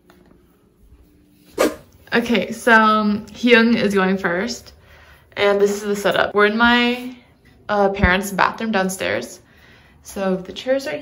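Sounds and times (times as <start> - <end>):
short sharp bark: 1.6 - 1.9.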